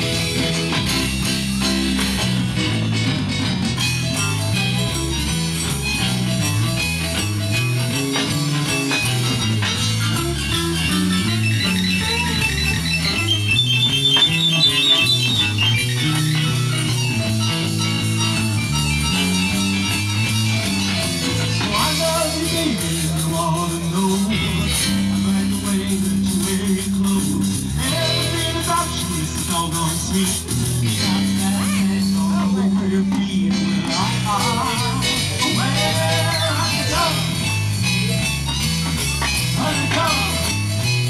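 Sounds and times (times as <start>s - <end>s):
rockabilly band playing: 0.0s - 41.0s.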